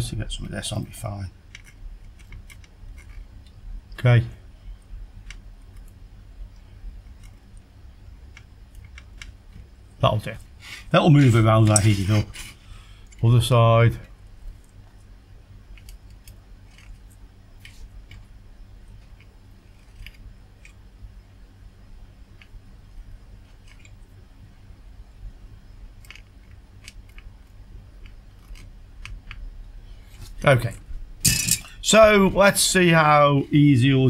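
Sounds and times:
low electrical hum: 0.0s - 34.0s.

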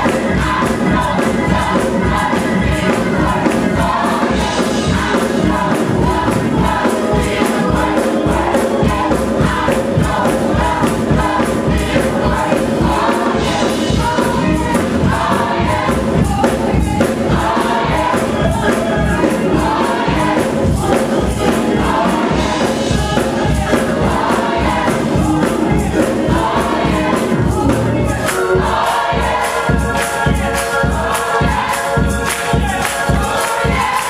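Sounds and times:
church choir singing gospel: 0.0s - 34.0s
instrumental backing with beat: 0.0s - 34.0s.

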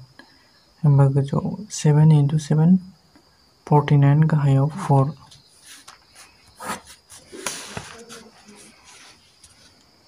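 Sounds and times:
pen scratching on paper: 5.6s - 9.2s.

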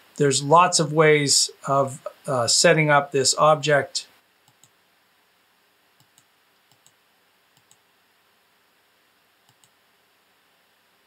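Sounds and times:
faint computer mouse clicks: 4.5s - 4.8s, 6.0s - 7.8s, 9.4s - 9.8s.

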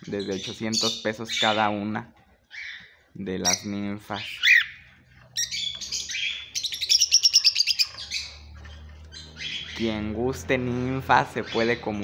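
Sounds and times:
cockatiels chirping: 3.5s - 4.8s, 5.4s - 10.0s.

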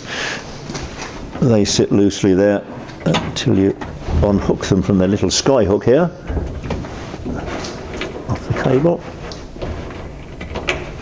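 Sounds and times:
light scrapes and knocks: 6.3s - 11.0s.

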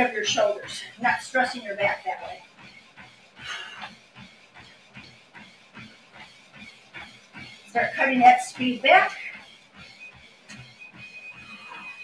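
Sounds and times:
footfalls on treadmill belt: 0.0s - 12.0s.

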